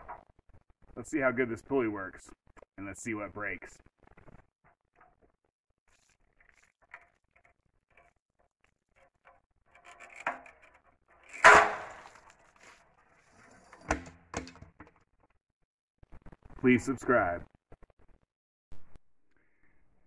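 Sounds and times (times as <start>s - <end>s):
bucket crashing on ground: 11.4s - 12.8s, 13.4s - 15.0s
sharp knocks: 13.8s - 15.0s.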